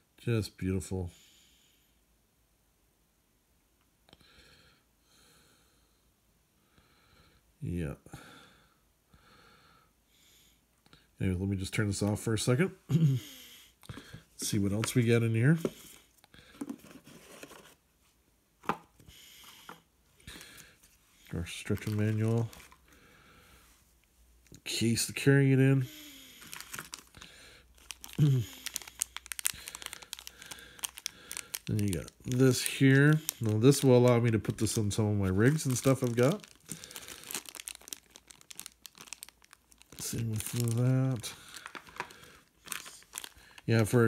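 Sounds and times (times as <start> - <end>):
cardboard packaging scraping and rustling: 16.6 - 17.8
plastic bag crinkling: 20.3 - 22.9, 26.4 - 44.0.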